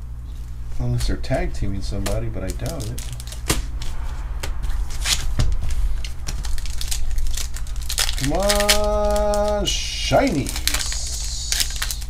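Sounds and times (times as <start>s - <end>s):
foil wrapper crinkling and tearing: 2.0s - 3.9s, 5.0s - 12.0s.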